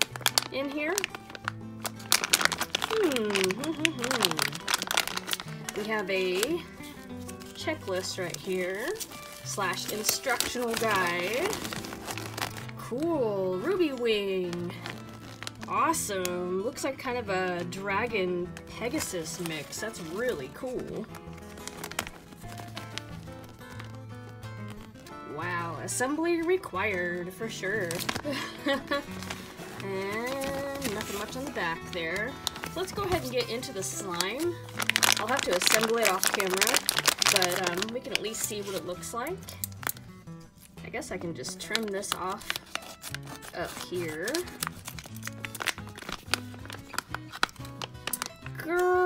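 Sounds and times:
plastic bag crinkling: 0.0s - 17.8s, 18.4s - 40.8s, 41.4s - 48.8s
background music with low notes: 0.0s - 49.0s.

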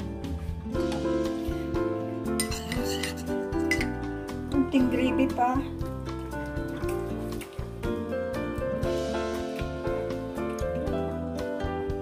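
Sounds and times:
background music: 0.0s - 12.0s
dish clinking: 2.3s - 4.1s.

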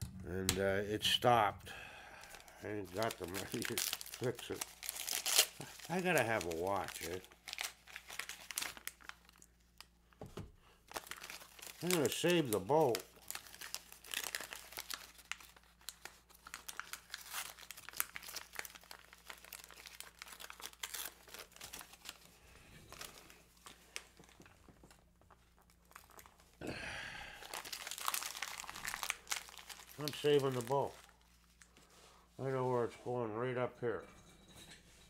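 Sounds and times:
wrapping paper crinkling: 2.2s - 9.9s, 10.8s - 26.6s, 27.4s - 32.2s.

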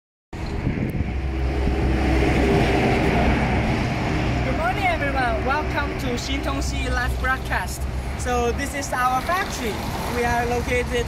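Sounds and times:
vehicle passing by: 0.4s - 11.0s.

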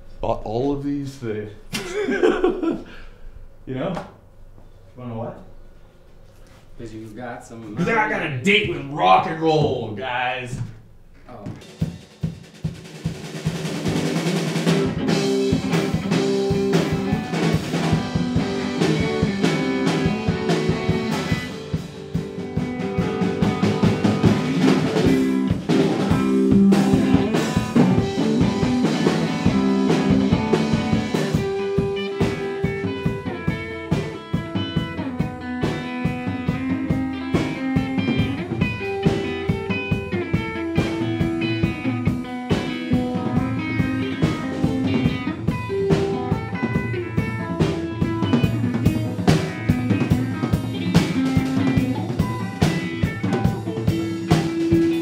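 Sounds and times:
drum kit beating rhythm: 7.8s - 55.0s
electric guitar through effects: 13.6s - 55.0s.

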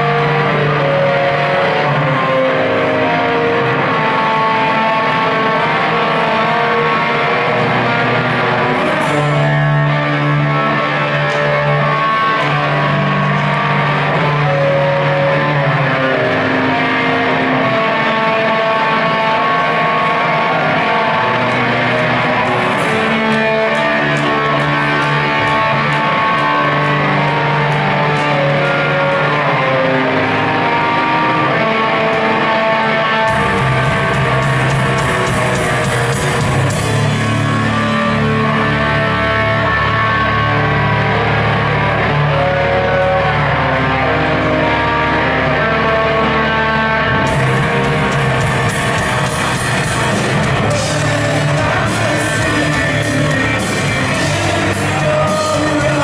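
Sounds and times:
live band playing: 0.0s - 56.0s
ringing electric guitar notes: 0.0s - 56.0s.

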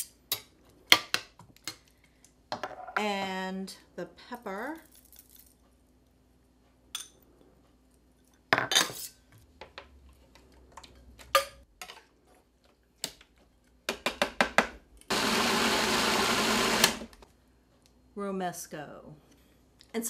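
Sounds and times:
food processor motor running: 15.1s - 17.2s.

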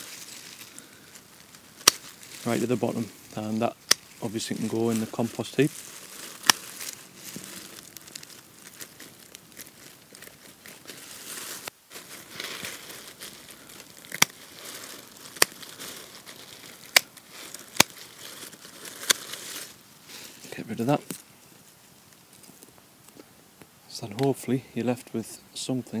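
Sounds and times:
dry leaves rustling: 0.0s - 22.7s
secateurs snipping foliage: 1.5s - 2.7s, 3.4s - 5.1s, 6.4s - 7.5s, 13.9s - 18.2s.

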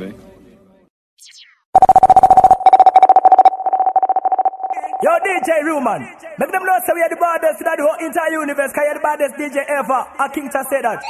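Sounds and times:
high falling zap: 1.2s - 5.7s
stuttering electronic tone: 1.2s - 5.9s.

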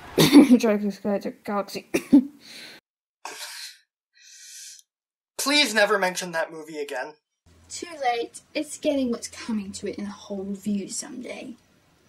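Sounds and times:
person coughing: 1.9s - 2.3s.

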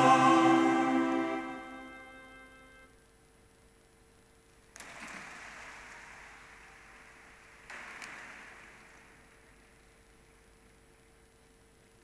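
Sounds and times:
faint audience applause: 4.8s - 9.5s.

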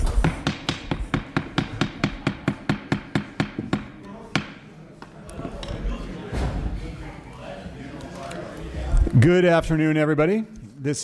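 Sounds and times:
wooden gavel knocking: 0.2s - 4.6s.

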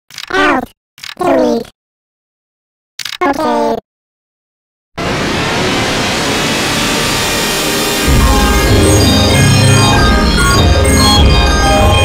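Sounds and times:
harsh broadband noise: 5.0s - 12.0s.

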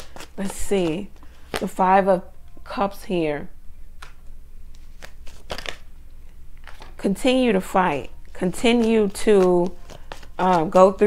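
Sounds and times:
cards clicking and rustling: 0.0s - 1.7s, 4.8s - 5.9s, 6.6s - 11.0s.

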